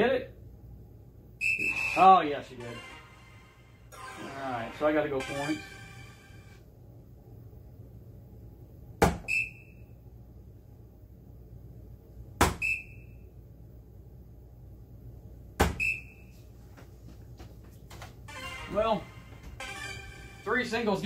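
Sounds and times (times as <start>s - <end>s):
short electronic beep: 1.4s - 2.9s
darts hitting dartboard: 9.0s - 9.3s, 12.4s - 12.6s, 15.6s - 15.9s.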